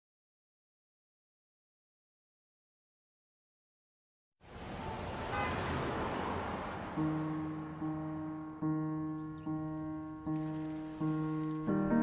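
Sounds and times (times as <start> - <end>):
freeway traffic rushing: 4.4 - 11.4
car horn toot: 4.8 - 5.7.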